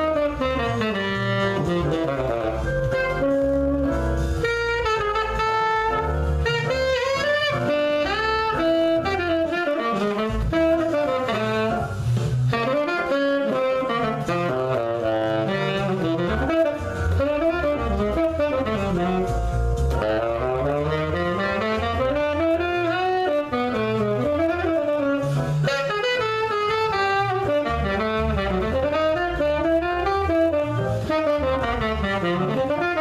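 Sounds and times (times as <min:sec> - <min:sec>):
saxophone melody: 0:00.0 - 0:33.0.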